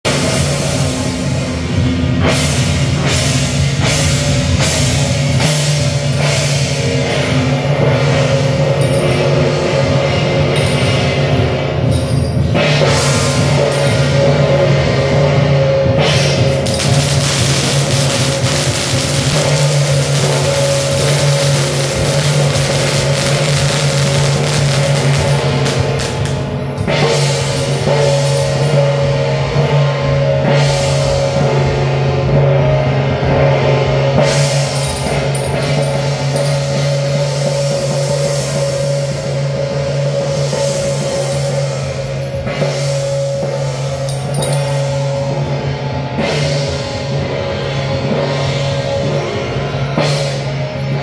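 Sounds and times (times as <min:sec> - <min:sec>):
drums: 0:00.0 - 0:51.0
cymbals clashing: 0:00.1 - 0:51.0
gongs: 0:00.1 - 0:51.0
steady ringing tone: 0:16.4 - 0:29.1.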